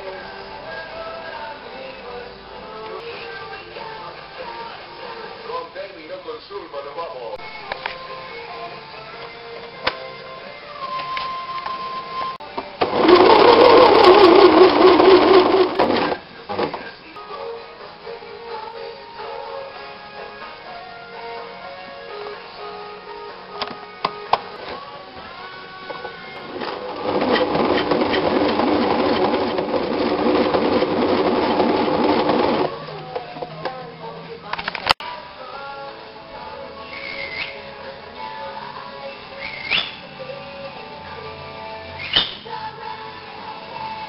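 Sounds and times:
electric sewing machine stitching: 12.8s - 16.9s, 25.9s - 33.1s.

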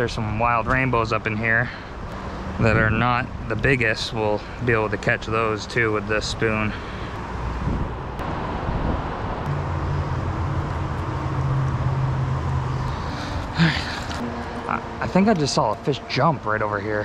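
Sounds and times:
drone of passing traffic: 0.0s - 17.0s.

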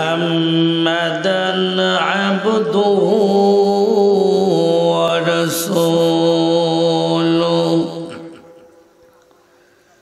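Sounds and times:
man chanting melodic recitation: 0.0s - 9.1s.

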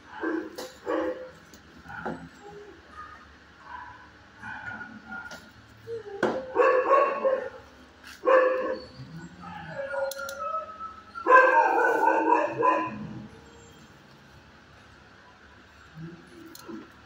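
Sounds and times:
dog barking and howling: 0.0s - 13.9s.

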